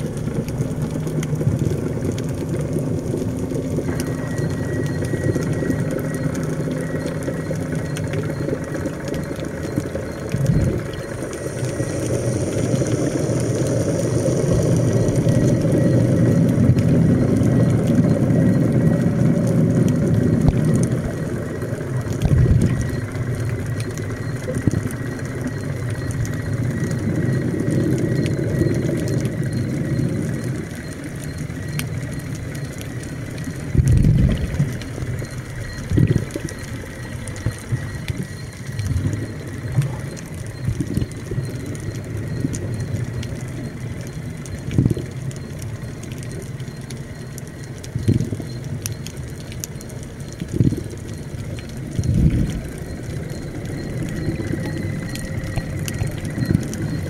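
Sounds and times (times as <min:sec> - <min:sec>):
underwater mechanical hum: 0:00.0 - 0:57.0.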